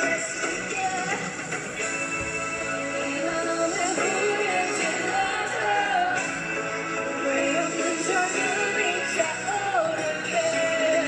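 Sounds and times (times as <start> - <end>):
woman singing into a microphone: 0.0 - 1.4, 2.9 - 6.4, 7.2 - 11.0
pop backing music: 0.0 - 11.0.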